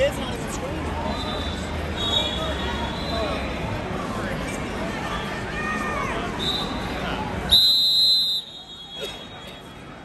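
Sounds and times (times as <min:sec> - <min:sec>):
crowd chatter and shouting: 0:00.0 - 0:10.0
faint whistle toot: 0:01.1 - 0:03.4, 0:06.4 - 0:06.9, 0:07.5 - 0:09.7
referee's whistle blast: 0:07.5 - 0:09.4.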